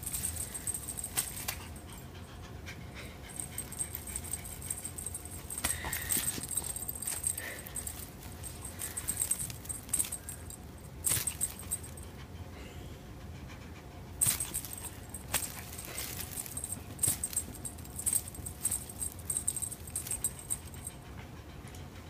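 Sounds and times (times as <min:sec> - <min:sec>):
light metallic jingling: 0:00.0 - 0:02.2, 0:03.2 - 0:12.2, 0:14.2 - 0:21.1
cat panting: 0:00.1 - 0:22.0.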